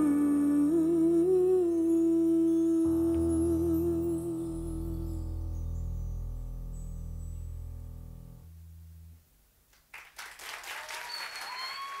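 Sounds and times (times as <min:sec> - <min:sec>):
audience applause: 0:09.9 - 0:12.0
audience cheering: 0:10.0 - 0:12.0
whistle: 0:10.9 - 0:12.0.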